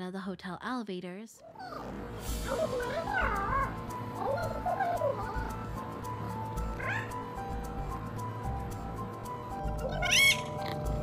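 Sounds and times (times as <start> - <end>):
background music with low pulse: 1.9 - 11.0.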